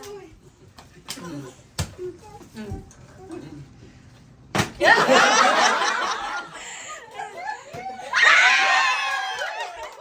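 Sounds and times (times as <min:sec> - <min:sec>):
group of people laughing: 0:04.8 - 0:08.2.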